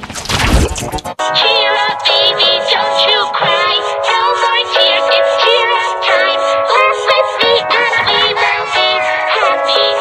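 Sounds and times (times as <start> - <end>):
distorted cartoon singing over music: 1.1 - 10.0.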